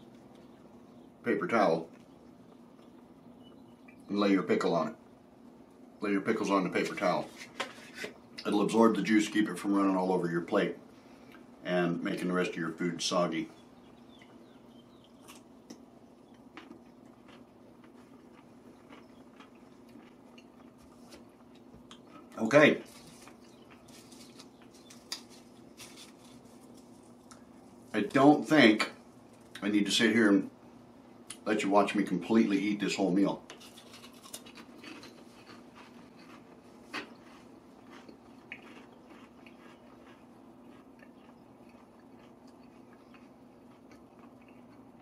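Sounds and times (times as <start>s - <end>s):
low steady hum: 0.0s - 45.0s
chewing crunches and clicks: 1.8s - 3.1s, 13.8s - 28.2s, 28.8s - 29.7s, 33.5s - 45.0s.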